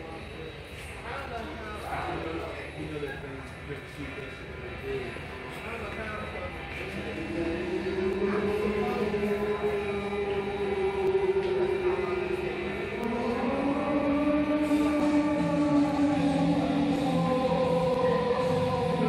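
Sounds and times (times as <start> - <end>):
wordless choir chanting: 6.9 - 19.0.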